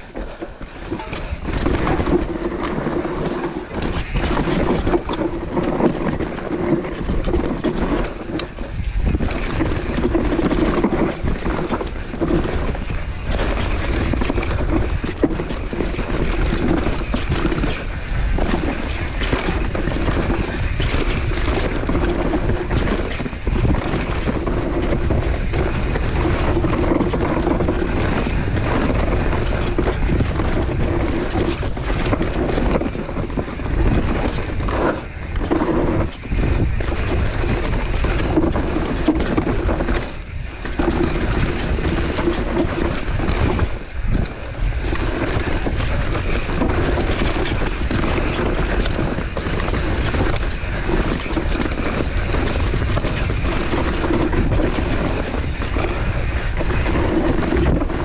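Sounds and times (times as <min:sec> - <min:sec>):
mountain bike tyre noise on dirt: 0:00.0 - 0:58.0
wind on camera microphone: 0:00.0 - 0:58.0.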